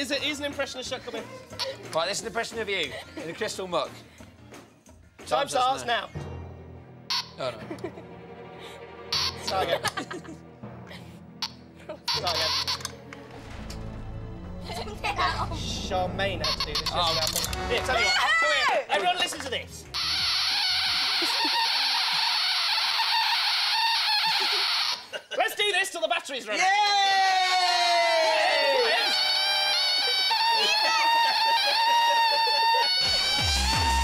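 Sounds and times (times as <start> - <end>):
voices shouting together: 26.8 - 34.0
electric buzzer buzzing: 29.0 - 34.0.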